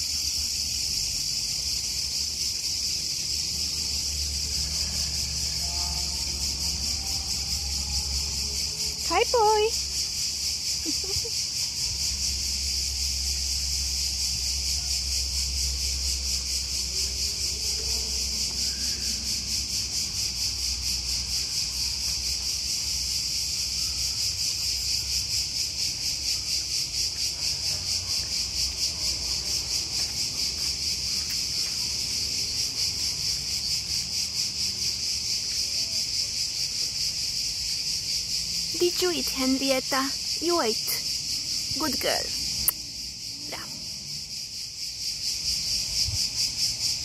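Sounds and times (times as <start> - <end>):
cicadas buzzing: 0.0 - 47.0.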